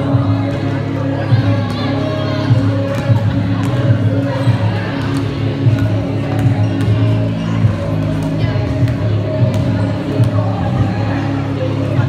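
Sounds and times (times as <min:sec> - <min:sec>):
basketballs bouncing on wood floor: 0:08.0 - 0:10.8.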